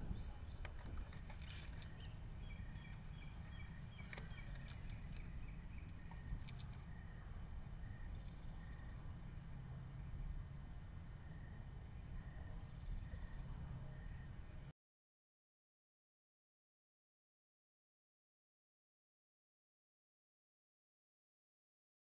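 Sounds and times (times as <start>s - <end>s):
low rumble: 0.0s - 14.7s.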